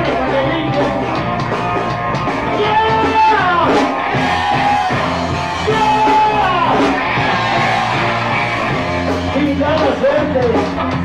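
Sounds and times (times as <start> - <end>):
man singing: 0.0 - 1.0, 2.6 - 3.8, 5.7 - 6.9, 9.3 - 10.8
drum kit: 0.0 - 11.0
electric guitars: 0.0 - 11.0.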